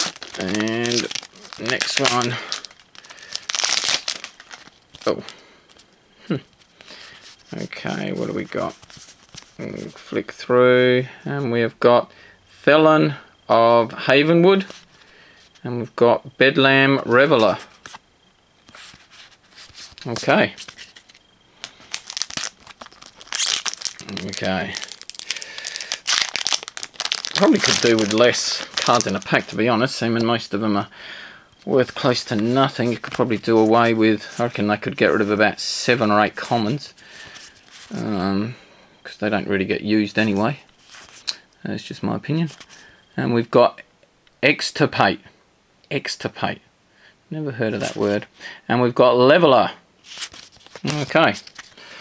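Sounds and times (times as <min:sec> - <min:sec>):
foil wrapper crinkling: 0:00.0 - 0:05.3, 0:18.8 - 0:30.0, 0:31.7 - 0:38.2, 0:50.1 - 0:51.8.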